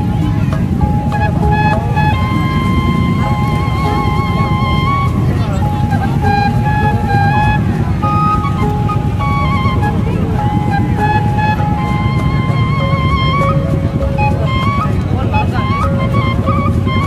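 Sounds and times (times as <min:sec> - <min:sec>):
crowd noise: 0:00.0 - 0:17.0
procession music through loudspeakers: 0:00.0 - 0:17.0.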